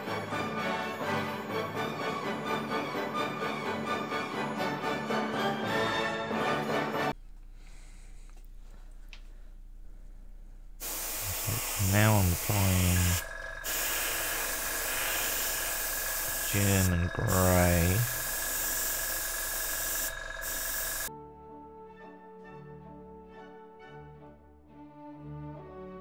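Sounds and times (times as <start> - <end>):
airbrush spraying hiss: 10.8 - 21.1.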